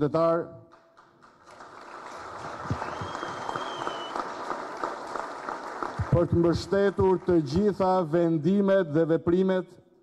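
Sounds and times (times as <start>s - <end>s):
audience applause: 1.2s - 7.4s
high whistle: 2.7s - 4.3s.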